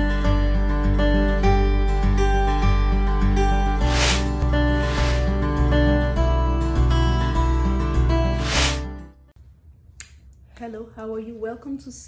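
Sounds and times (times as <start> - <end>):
music: 0.0 - 9.4
woman speaking: 10.6 - 12.0.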